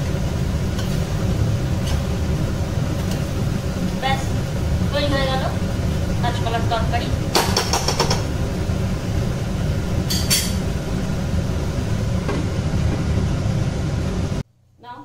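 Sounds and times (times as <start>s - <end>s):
low machine hum: 0.0s - 15.0s
spatula scraping a wok: 0.6s - 2.2s.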